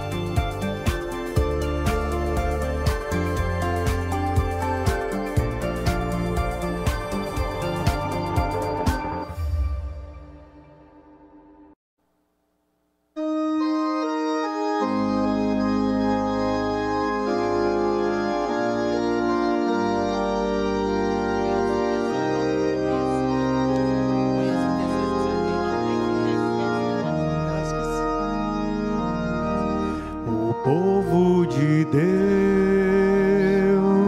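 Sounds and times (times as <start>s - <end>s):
deep organ pedal bass: 0.0s - 9.3s, 13.3s - 34.0s
organ playing held chords: 0.0s - 9.6s, 13.2s - 34.0s.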